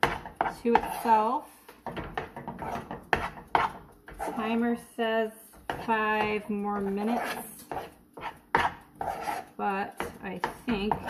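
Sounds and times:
spoon scraping a steel saucepan: 0:00.0 - 0:01.4, 0:02.4 - 0:04.8, 0:05.7 - 0:11.0.

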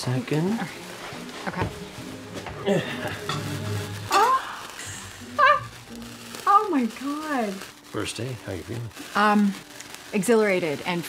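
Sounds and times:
soft background music: 0:00.0 - 0:11.0
sparkler sizzling: 0:00.0 - 0:11.0.

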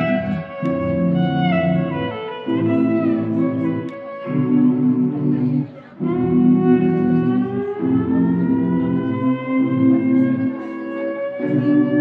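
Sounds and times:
looped sustained low notes: 0:00.0 - 0:10.8.

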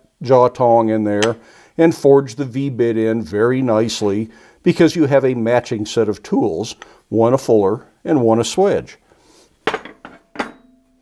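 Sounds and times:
steel tools clinking on steel bench: 0:09.7 - 0:10.8.

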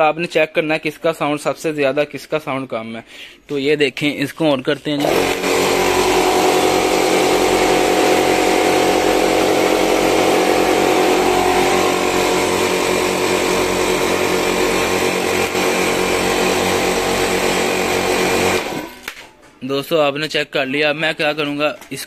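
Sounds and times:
air compressors running: 0:05.0 - 0:19.1.

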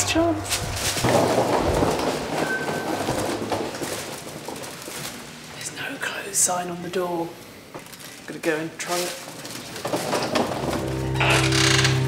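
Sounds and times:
footsteps: 0:00.0 - 0:05.6
suitcase wheels rolling on tiles: 0:00.1 - 0:05.6, 0:07.7 - 0:12.0.

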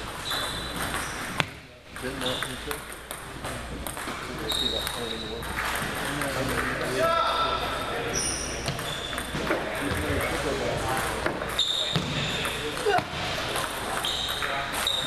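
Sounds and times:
ping pong ball clicking off paddles: 0:00.0 - 0:06.9, 0:08.6 - 0:10.4
ball clicks from nearby tables: 0:00.3 - 0:06.8.

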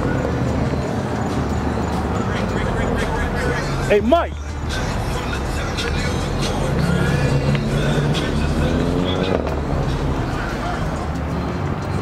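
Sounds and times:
car engine running: 0:00.0 - 0:12.0
crowd voices: 0:00.0 - 0:12.0
music: 0:02.3 - 0:12.0.

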